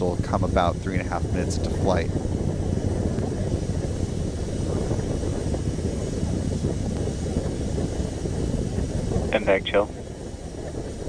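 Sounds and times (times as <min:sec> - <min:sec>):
distant rocket engine rumble: 0:00.0 - 0:11.0.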